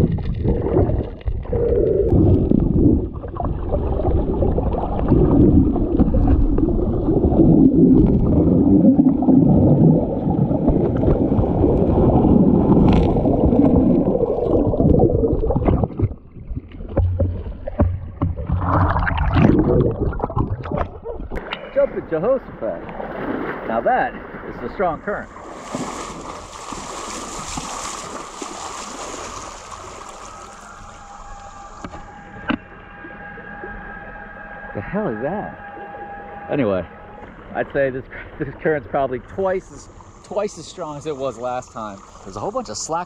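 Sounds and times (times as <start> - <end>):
muffled underwater water rushing: 0.0 - 43.0
water splashing: 0.0 - 43.0.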